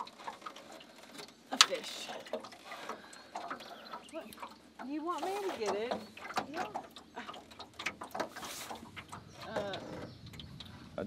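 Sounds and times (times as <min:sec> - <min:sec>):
hands handling fish on metal boat: 0:00.0 - 0:11.0.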